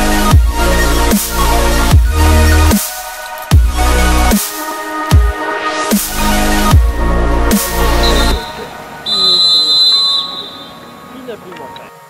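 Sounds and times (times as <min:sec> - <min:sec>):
referee's whistle blast: 0:08.0 - 0:10.8.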